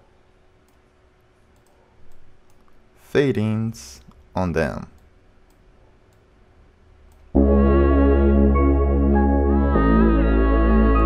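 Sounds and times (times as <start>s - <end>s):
deep bass: 7.4s - 11.0s
synth pad chord: 7.4s - 11.0s.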